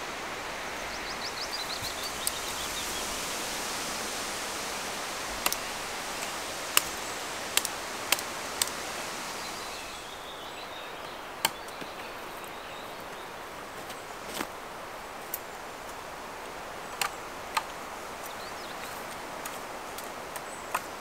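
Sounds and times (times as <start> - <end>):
wind rushing through trees: 0.0 - 21.0.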